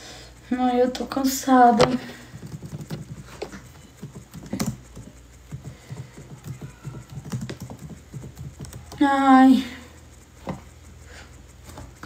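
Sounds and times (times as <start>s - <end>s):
soft irregular taps and clicks: 1.8s - 9.0s.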